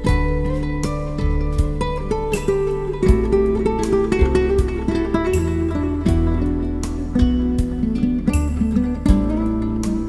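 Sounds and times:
acoustic guitar picking chords: 0:00.0 - 0:10.0.

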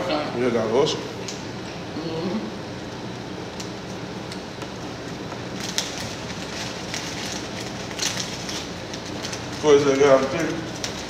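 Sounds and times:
low room hum: 0:00.0 - 0:11.0
paper wrapper crinkling: 0:05.1 - 0:11.0.

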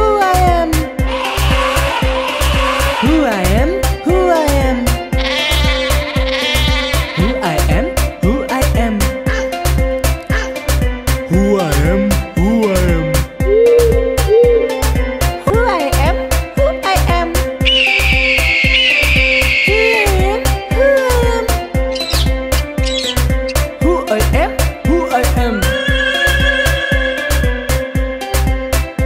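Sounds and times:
children's music with steady beat: 0:00.0 - 0:29.0
high eagle screech: 0:01.1 - 0:03.1, 0:17.6 - 0:20.0, 0:21.9 - 0:23.6, 0:25.6 - 0:28.1
goat bleating: 0:01.2 - 0:03.2, 0:05.1 - 0:07.5, 0:17.8 - 0:20.1.

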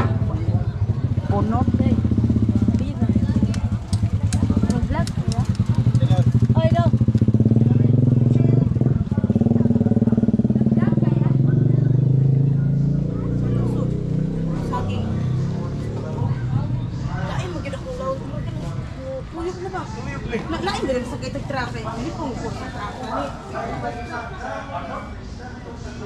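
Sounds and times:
people talking: 0:00.0 - 0:26.0.

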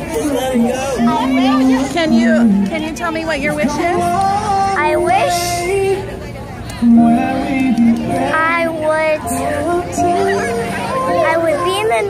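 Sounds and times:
high singing voice: 0:00.0 - 0:06.2, 0:06.8 - 0:12.0
music: 0:00.0 - 0:12.0.

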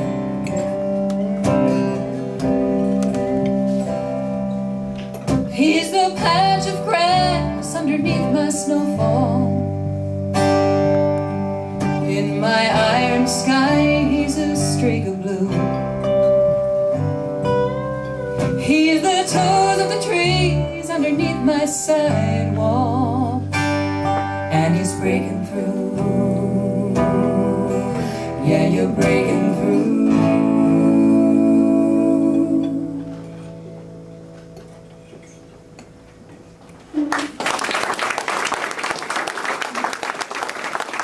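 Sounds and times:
slide guitar melody: 0:00.0 - 0:36.8
strummed acoustic guitars: 0:00.0 - 0:36.8.

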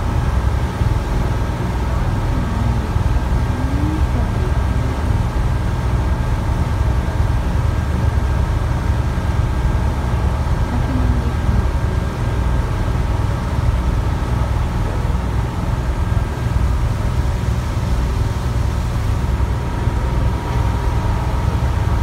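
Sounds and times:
boat engine rumble: 0:00.0 - 0:22.0
faint steady hum: 0:00.0 - 0:22.0
wind: 0:00.0 - 0:22.0.

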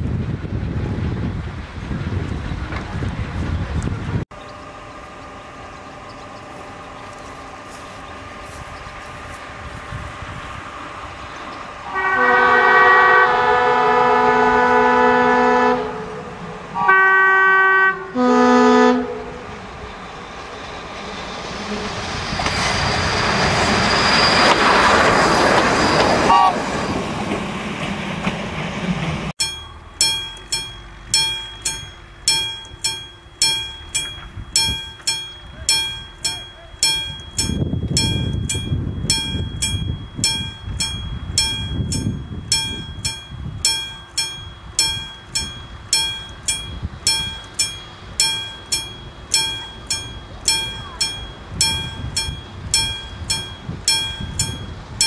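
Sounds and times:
train passing: 0:00.0 - 0:55.0
train horn blasts: 0:11.7 - 0:19.6, 0:26.2 - 0:26.7
wheel squeal: 0:20.3 - 0:27.4.

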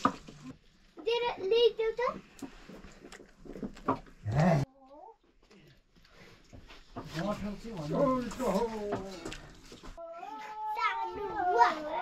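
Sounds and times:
people talking: 0:10.1 - 0:12.0.

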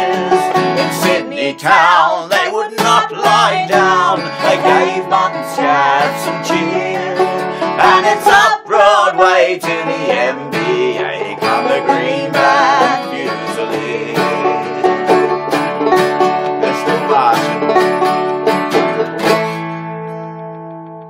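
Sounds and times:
plucked banjo: 0:00.0 - 0:21.0
strummed acoustic guitar: 0:00.0 - 0:21.0.

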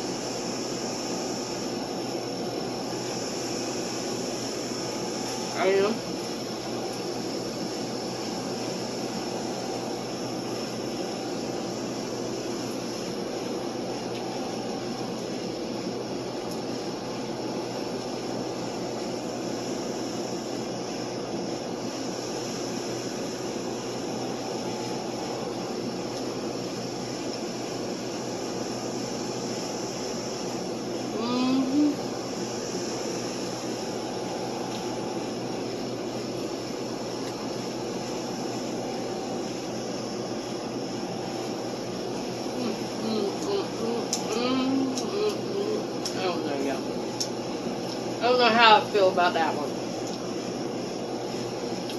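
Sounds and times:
mechanical room hum and hiss: 0:00.0 - 0:51.9.

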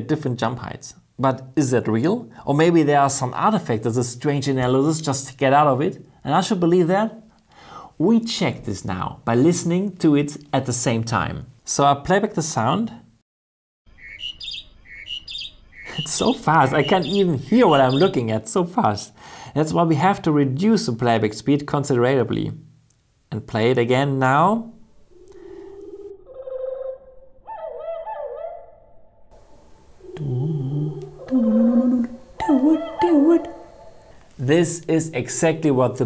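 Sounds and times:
slowed birdsong whistling tones: 0:13.9 - 0:18.3
songbird chirping song: 0:13.9 - 0:18.6, 0:29.4 - 0:34.3.

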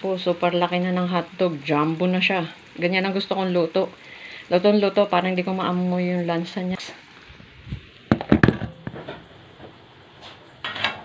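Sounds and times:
hot dogs sizzling in oil: 0:00.0 - 0:11.0.

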